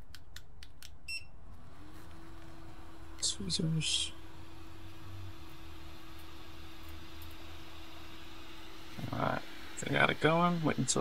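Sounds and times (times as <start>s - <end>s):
blower steady low tone: 1.0s - 11.0s.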